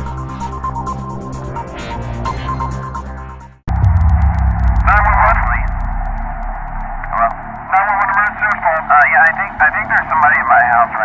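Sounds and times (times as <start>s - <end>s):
electronic music: 3.7s - 8.8s
low hum: 3.7s - 9.6s
voice over telephone line: 7.8s - 11.0s.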